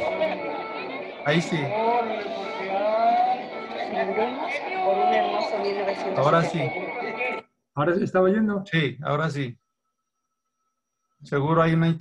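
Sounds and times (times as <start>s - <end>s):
crowd chattering: 0.0s - 7.4s
film music: 0.0s - 7.4s.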